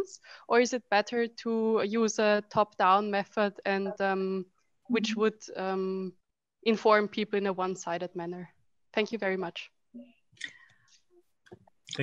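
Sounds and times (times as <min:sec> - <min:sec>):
person speaking: 0:03.6 - 0:05.4.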